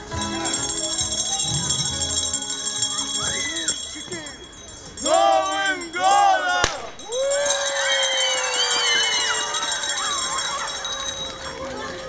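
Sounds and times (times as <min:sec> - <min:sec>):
children shouting and cheering: 0:06.1 - 0:12.0.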